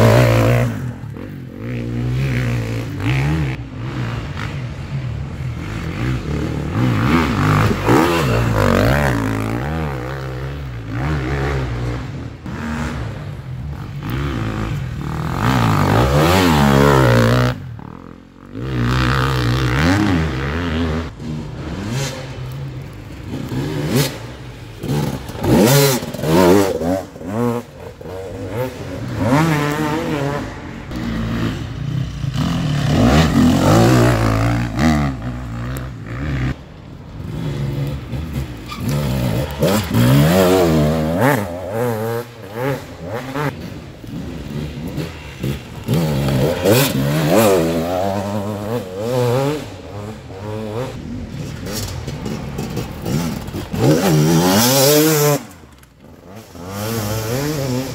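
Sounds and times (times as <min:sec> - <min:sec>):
motorcycles revving past: 0:00.0 - 0:57.9.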